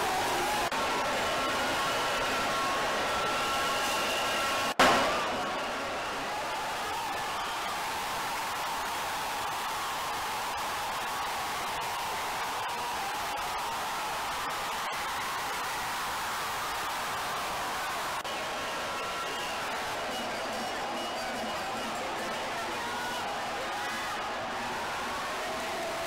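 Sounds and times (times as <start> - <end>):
stadium crowd noise: 0.0 - 26.0.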